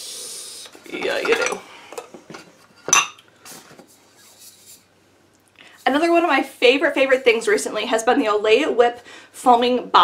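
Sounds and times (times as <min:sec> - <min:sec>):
containers clattering and clinking: 0:00.8 - 0:03.2.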